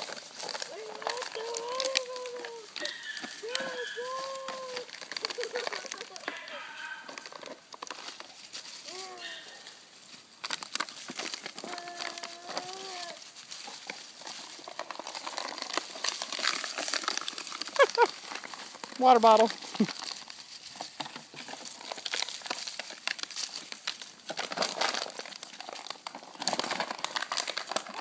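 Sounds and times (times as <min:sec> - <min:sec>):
dry leaves rustling: 0:00.0 - 0:28.0
plastic bottle crinkling: 0:00.0 - 0:28.0
puppy yelps: 0:02.3 - 0:04.5, 0:09.0 - 0:09.8
puppy whines and yips: 0:02.3 - 0:04.8.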